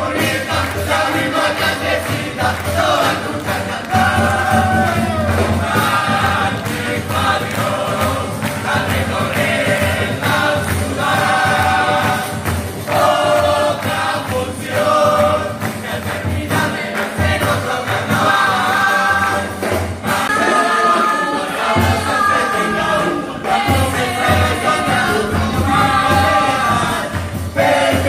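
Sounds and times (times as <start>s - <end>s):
bass drum: 0.0s - 20.4s, 23.4s - 28.0s
children singing in unison: 0.0s - 28.0s
snare drum: 0.0s - 28.0s.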